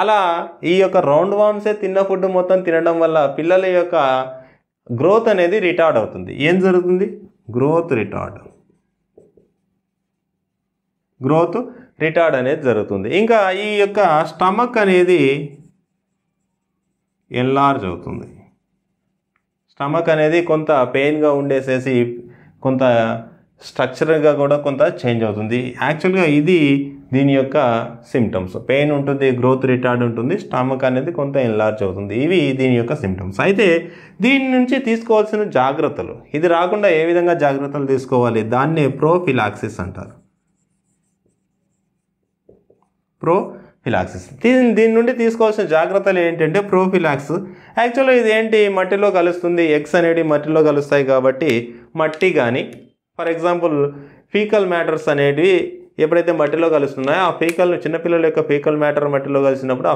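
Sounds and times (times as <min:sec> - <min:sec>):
man speaking: 0:00.0 - 0:08.6, 0:11.2 - 0:15.8, 0:17.3 - 0:18.6, 0:19.7 - 0:41.0, 0:43.2 - 0:59.9
marker pen on whiteboard: 0:06.5 - 0:10.6, 0:12.4 - 0:21.5, 0:34.9 - 0:43.2.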